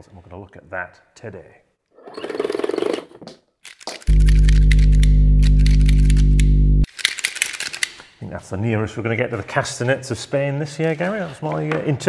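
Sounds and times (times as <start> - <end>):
loud low drone: 4.1 - 6.9.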